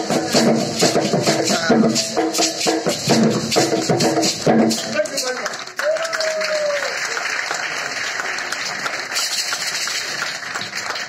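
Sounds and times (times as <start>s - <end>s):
audience applauding: 4.7s - 11.0s.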